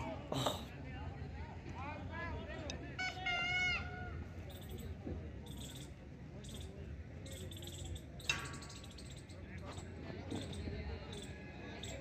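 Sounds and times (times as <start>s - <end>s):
faint distant voices: 0.0s - 12.0s.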